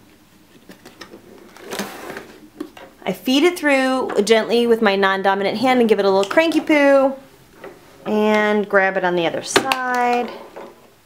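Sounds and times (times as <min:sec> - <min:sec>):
plastic plate scraping slide: 0:01.1 - 0:02.5.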